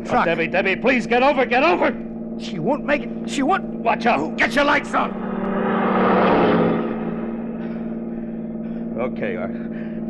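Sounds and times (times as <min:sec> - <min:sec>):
car engine drone: 0:00.0 - 0:10.0
truck rushing past: 0:04.4 - 0:08.2.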